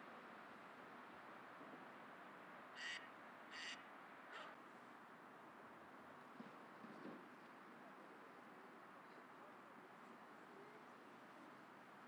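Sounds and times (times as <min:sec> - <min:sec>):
bird harsh calls: 0:02.8 - 0:04.6.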